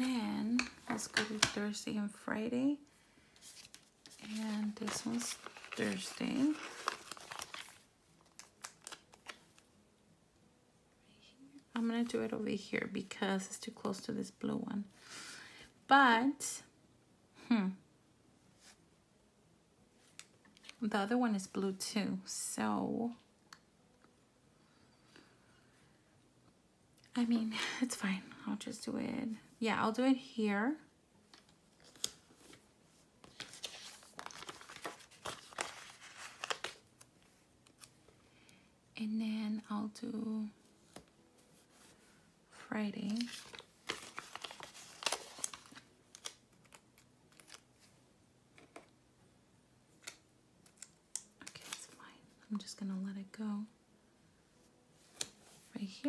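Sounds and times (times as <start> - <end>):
paper sticker sheet rustling: 3.4 - 9.6, 33.2 - 36.8, 43.0 - 47.9.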